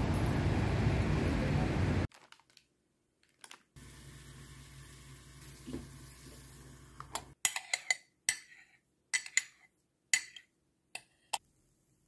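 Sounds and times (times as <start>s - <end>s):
water running from a tap: 3.8s - 7.4s.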